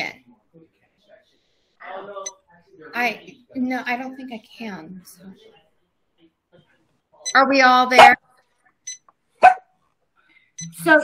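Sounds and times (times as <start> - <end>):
dog barking: 9.4 - 9.7.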